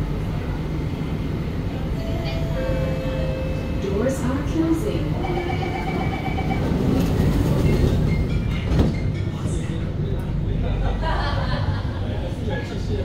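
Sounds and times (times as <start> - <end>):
stationary train hum: 0.0 - 13.0
train door-closing beeps: 2.0 - 3.8, 5.1 - 9.3
train doors knocking shut: 6.5 - 9.3.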